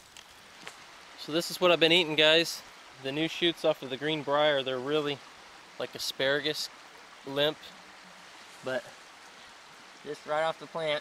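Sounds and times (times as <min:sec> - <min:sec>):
creek flowing: 0:00.0 - 0:11.0.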